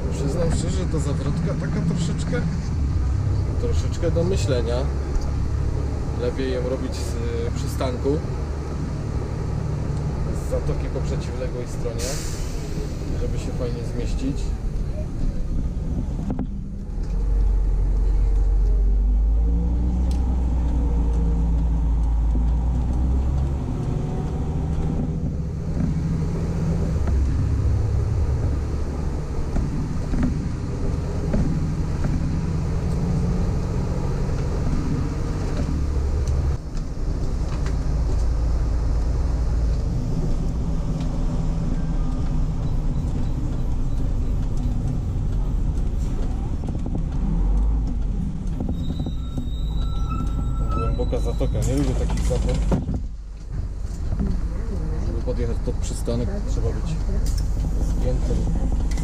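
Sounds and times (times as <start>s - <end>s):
bus diesel engine running: 0.0s - 59.0s.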